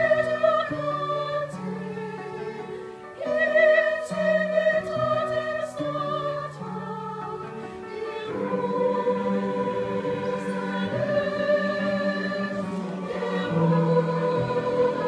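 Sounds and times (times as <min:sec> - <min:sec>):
mixed choir singing: 0:00.0 - 0:15.0
upright piano accompaniment: 0:00.0 - 0:15.0.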